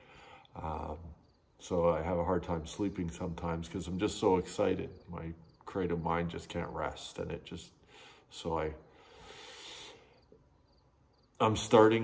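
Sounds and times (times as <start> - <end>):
crickets chirping: 0.0 - 12.0
soft breath-like hiss: 7.8 - 10.4.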